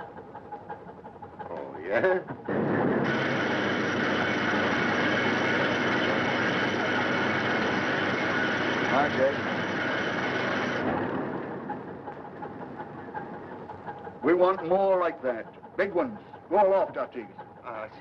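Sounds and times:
ship machinery running: 0:00.0 - 0:18.0.

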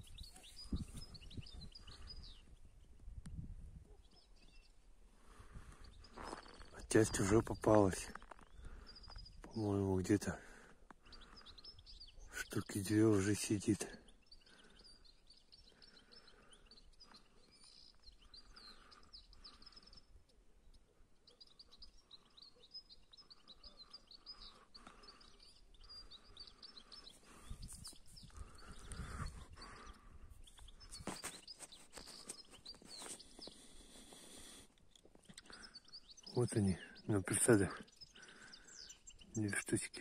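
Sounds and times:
wind rumble on microphone: 0:00.0 - 0:03.9, 0:27.4 - 0:29.6
finches twittering: 0:21.4 - 0:40.0.

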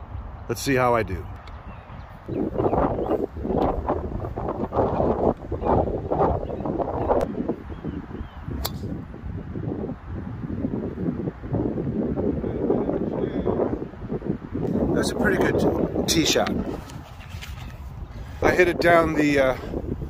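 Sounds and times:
wind buffeting microphone: 0:00.0 - 0:20.0
golf club striking ball: 0:08.6 - 0:09.0.

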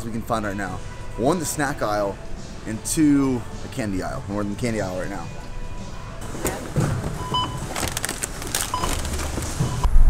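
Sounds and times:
packaged goods rustling: 0:06.2 - 0:09.9.

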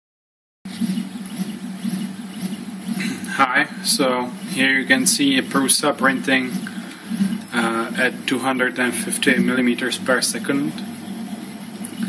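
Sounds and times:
printer stepper motors whining: 0:00.7 - 0:12.0.

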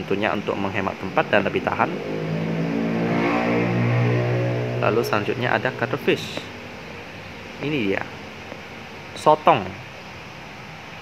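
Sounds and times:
man speaking: 0:00.0 - 0:02.0, 0:04.8 - 0:06.6, 0:07.6 - 0:08.2.

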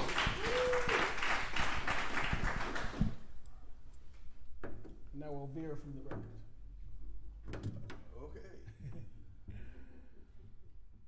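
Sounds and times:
audience applauding: 0:00.0 - 0:03.2.

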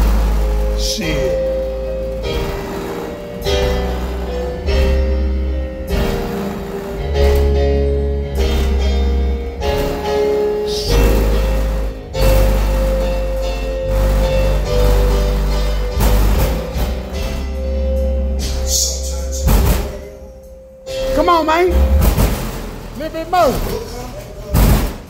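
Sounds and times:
deep bass notes: 0:00.0 - 0:25.0
melody line: 0:17.2 - 0:22.1.

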